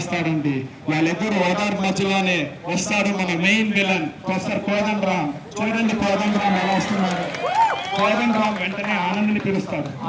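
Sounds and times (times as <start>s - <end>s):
people talking: 0.0s - 7.3s, 8.0s - 10.0s.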